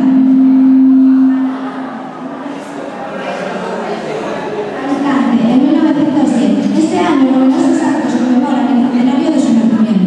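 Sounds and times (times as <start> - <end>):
low microphone feedback ring: 0.0 - 2.5.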